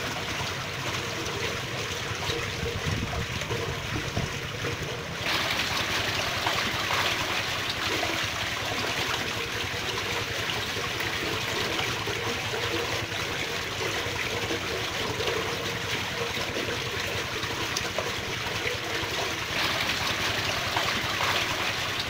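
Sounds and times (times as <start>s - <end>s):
stream babbling over stones: 0.0s - 22.0s.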